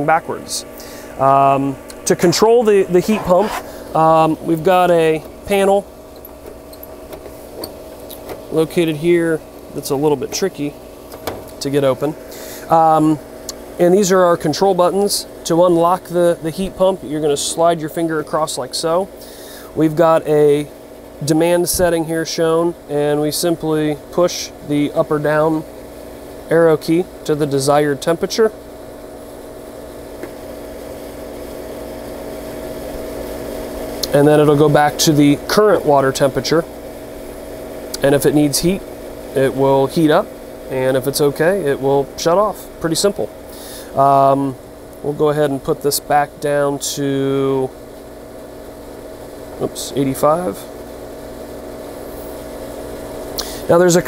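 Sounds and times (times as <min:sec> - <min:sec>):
pool equipment hum: 0:00.0 - 0:54.0.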